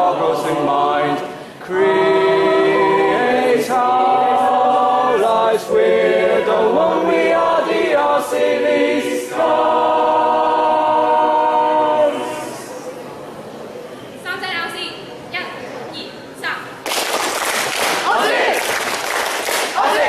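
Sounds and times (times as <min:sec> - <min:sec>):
mixed choir singing chords: 0:00.0 - 0:13.2, 0:18.0 - 0:18.8, 0:19.6 - 0:20.0.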